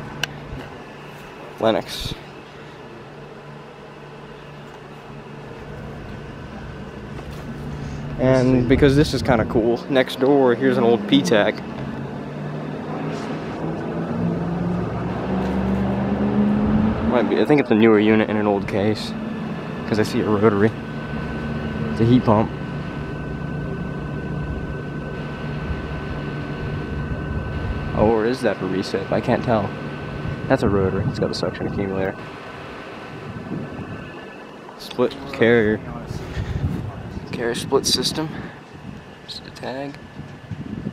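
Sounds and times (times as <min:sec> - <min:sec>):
machinery humming: 0:00.0 - 0:40.9
low tones drifting upward: 0:01.6 - 0:40.6
wind on microphone: 0:33.2 - 0:34.2, 0:35.8 - 0:39.3, 0:40.0 - 0:40.9.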